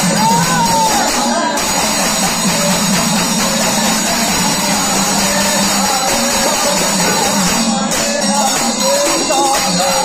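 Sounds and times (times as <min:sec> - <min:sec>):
hand cymbals clashing: 0:00.0 - 0:10.0
man singing: 0:00.0 - 0:10.0.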